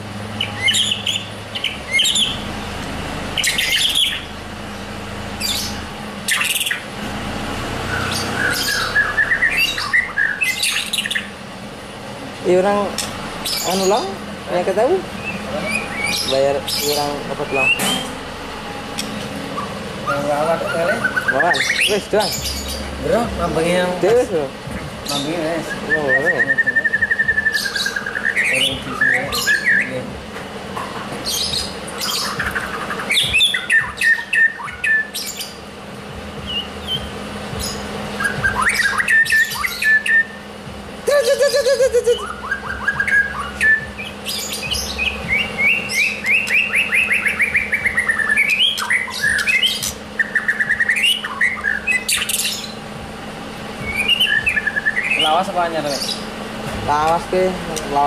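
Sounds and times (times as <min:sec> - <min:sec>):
songbirds singing: 0:00.0 - 0:58.0.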